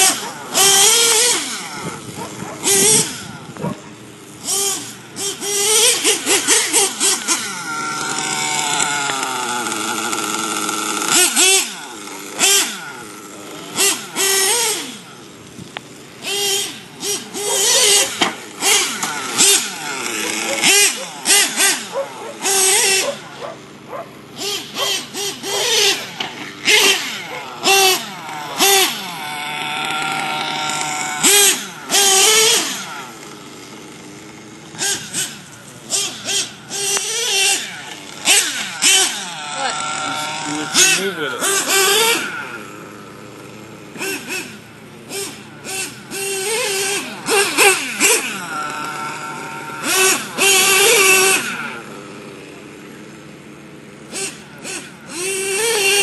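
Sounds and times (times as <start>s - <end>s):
model engine revving: 0.0s - 56.0s.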